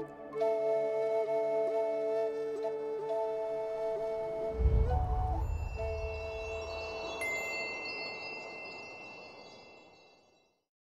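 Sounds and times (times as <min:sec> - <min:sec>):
low rumble: 0:04.4 - 0:07.1
bright ringing chime: 0:05.4 - 0:10.4.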